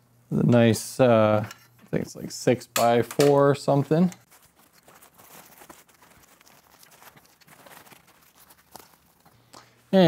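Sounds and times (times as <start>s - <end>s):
fabric rustling: 4.2s - 9.4s.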